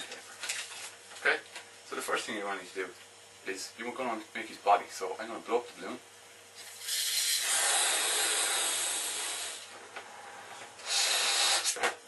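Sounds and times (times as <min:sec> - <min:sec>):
breath blowing into balloon: 0:06.6 - 0:12.0.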